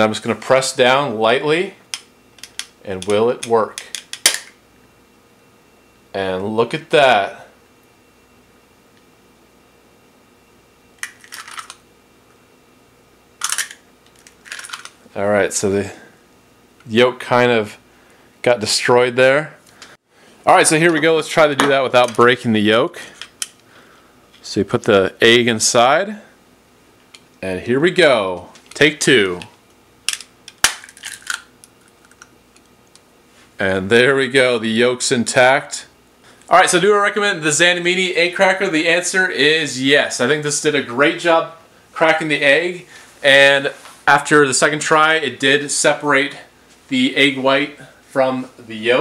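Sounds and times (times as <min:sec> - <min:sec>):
crunchy shell clicks: 0:01.9 - 0:04.6, 0:11.0 - 0:11.8, 0:13.4 - 0:15.0, 0:30.0 - 0:33.0
egg cracker clicking: 0:30.1 - 0:32.3
eggshell cracking: 0:30.1 - 0:32.3.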